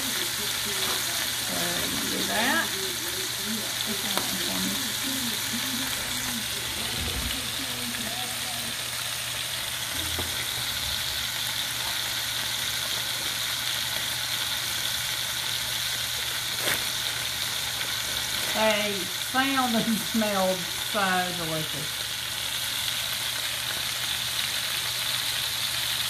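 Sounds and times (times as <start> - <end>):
patties sizzling in a skillet: 0.0 - 26.0.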